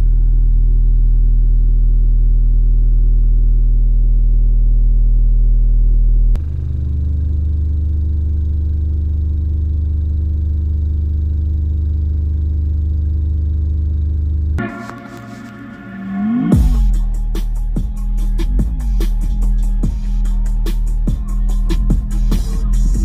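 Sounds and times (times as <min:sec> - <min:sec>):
subwoofer bass test tone: 0:00.0 - 0:12.9, 0:14.4 - 0:23.0.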